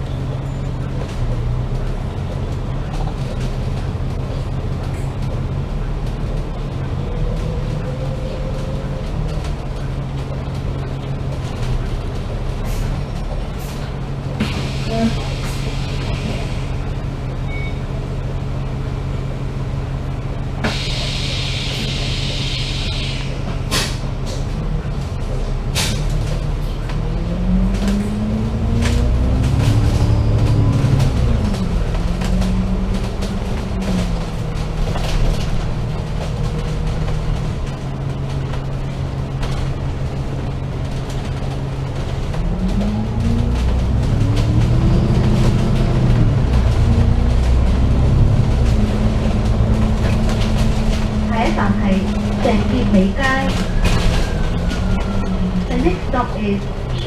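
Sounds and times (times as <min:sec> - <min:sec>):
bus body rattles and clicks: 0:00.0 - 0:57.0
diesel bus engine drone: 0:00.0 - 0:57.0
compressed air hiss: 0:20.6 - 0:24.0.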